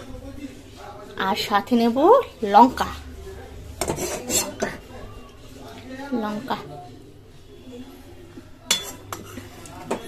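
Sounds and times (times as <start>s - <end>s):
metal spoon clinking on pan: 8.7s - 10.0s.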